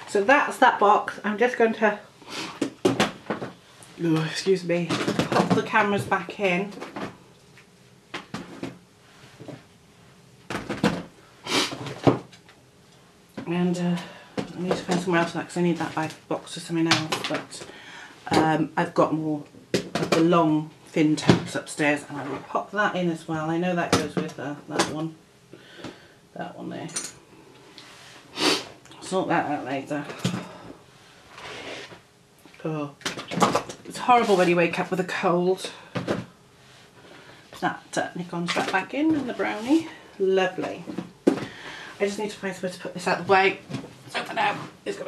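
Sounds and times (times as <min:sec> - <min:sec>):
woman blowing breath through nose: 0:11.4 - 0:11.8, 0:28.3 - 0:28.7.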